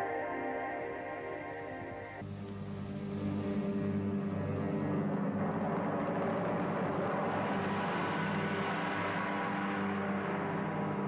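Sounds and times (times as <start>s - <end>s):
wheels spinning on sand: 2.9s - 11.0s
car engine revving: 3.1s - 11.0s.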